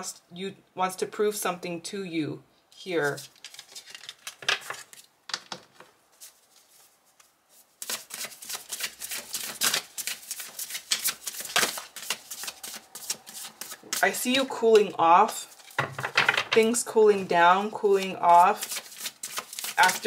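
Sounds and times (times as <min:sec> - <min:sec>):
cards shuffling in rapid flicks: 0:03.0 - 0:16.0, 0:17.8 - 0:20.0
cards clicking: 0:07.8 - 0:14.0.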